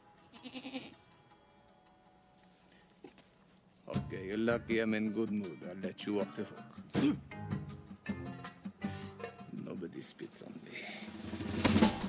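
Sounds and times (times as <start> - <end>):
goat bleating: 0.3 - 1.0.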